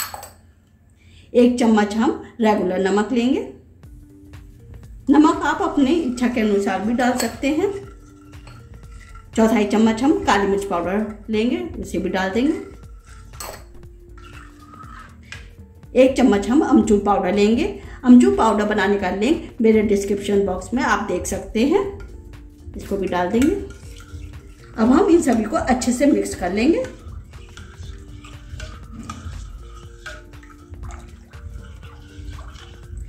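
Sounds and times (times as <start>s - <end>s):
metal spoon clinking glass bowl: 0.0s - 0.5s, 5.8s - 11.3s, 12.5s - 15.4s, 23.0s - 33.0s
soft background music: 0.0s - 33.0s
water sloshing as stirred by hand: 5.4s - 11.3s, 12.4s - 15.4s, 22.9s - 33.0s.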